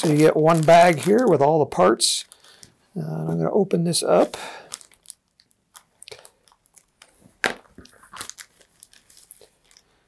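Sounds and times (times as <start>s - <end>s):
plastic bag crinkling: 0.0s - 3.5s, 4.1s - 10.0s.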